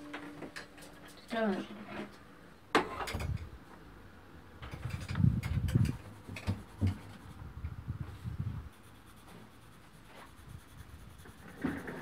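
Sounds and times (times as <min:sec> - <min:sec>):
pen scratching on paper: 0:05.8 - 0:07.4, 0:08.7 - 0:12.0.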